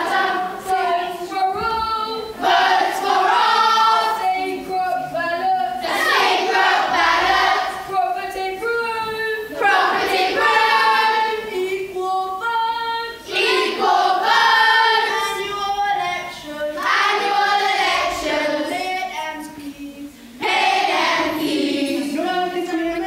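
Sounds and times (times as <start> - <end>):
children's choir singing: 0.0 - 23.0.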